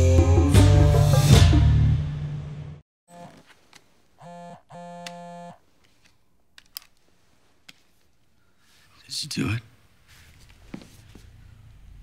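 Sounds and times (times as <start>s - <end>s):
phone vibrating: 3.1s - 3.5s, 4.2s - 5.6s.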